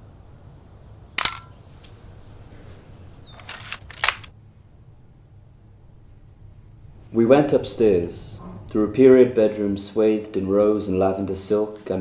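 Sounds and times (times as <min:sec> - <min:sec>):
camera shutter click: 0:01.2 - 0:01.5, 0:03.4 - 0:04.3
ratcheting film-advance wind: 0:01.2 - 0:01.5, 0:03.3 - 0:04.3.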